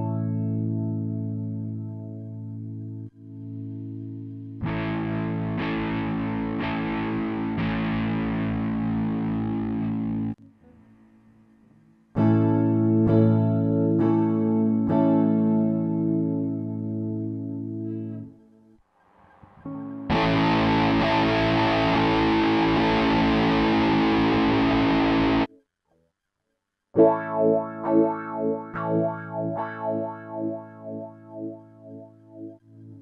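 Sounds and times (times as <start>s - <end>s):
distorted strummed guitar chord: 4.6s - 10.7s, 20.1s - 25.5s
single picked guitar notes: 4.6s - 10.8s, 19.6s - 25.5s
flanged guitar chord: 19.6s - 25.5s.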